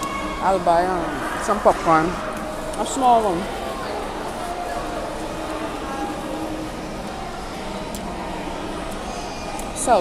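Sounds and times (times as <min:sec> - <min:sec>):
faint distant voices: 0:00.0 - 0:10.0
murmur of busy indoor space: 0:00.0 - 0:10.0.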